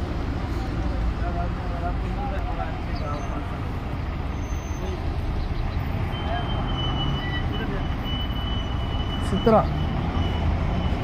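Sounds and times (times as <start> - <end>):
buses and traffic rumbling: 0.0 - 11.0.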